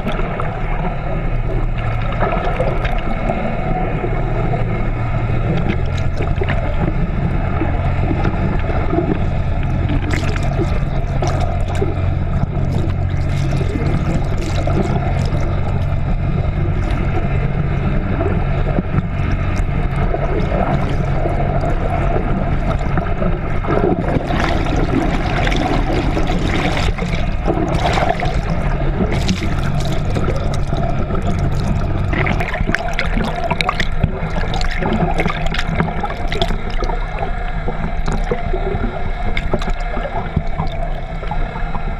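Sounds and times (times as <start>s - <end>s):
underwater boat engine hum: 0.0s - 41.9s
water rushing and bubbling: 0.0s - 41.9s.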